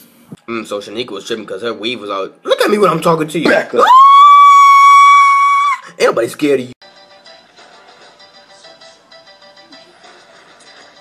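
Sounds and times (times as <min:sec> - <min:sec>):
person shrieking high note: 0:03.8 - 0:05.9.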